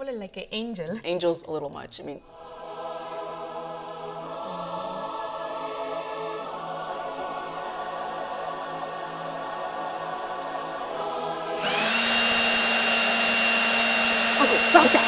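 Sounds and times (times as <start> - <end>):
choir singing held chord: 2.3 - 13.3, 14.1 - 15.0
hair dryer whining: 11.4 - 15.0.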